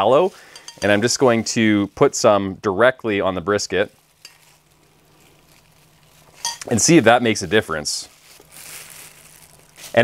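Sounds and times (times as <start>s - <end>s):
plastic gloves crinkling: 0.0s - 10.0s.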